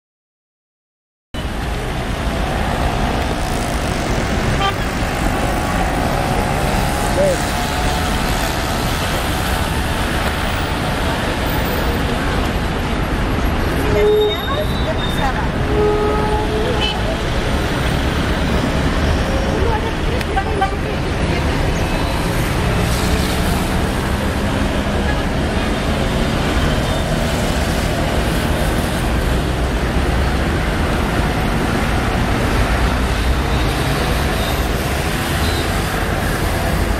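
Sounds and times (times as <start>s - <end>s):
car traffic noise: 1.4s - 36.9s.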